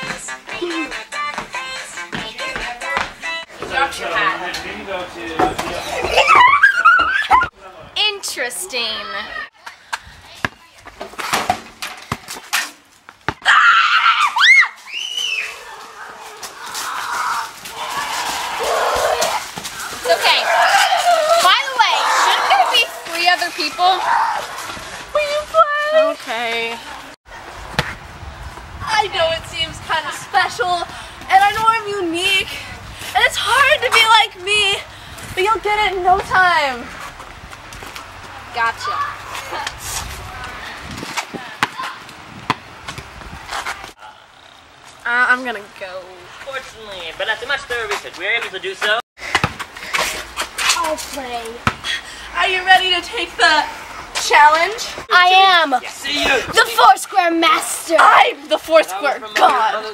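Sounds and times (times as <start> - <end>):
girl screaming and squealing: 6.2 - 7.5, 13.4 - 23.0
ball hitting concrete: 10.4 - 13.5, 27.7 - 28.0, 41.0 - 43.1, 49.2 - 51.9.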